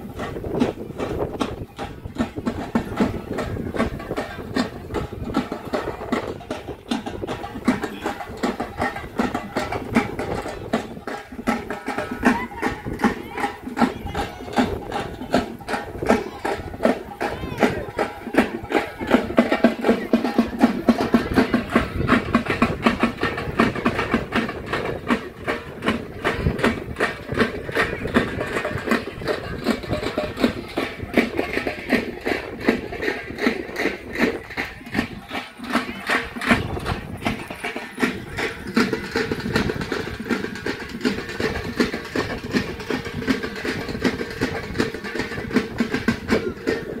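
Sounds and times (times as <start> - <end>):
fast drum beat: 0.0 - 47.0.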